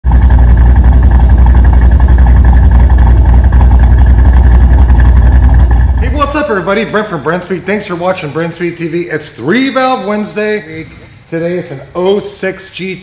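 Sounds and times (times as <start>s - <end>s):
car engine idling: 0.0s - 9.4s.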